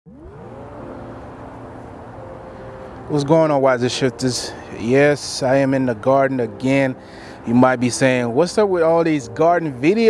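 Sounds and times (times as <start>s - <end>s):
engine-like rising hum: 0.1s - 10.0s.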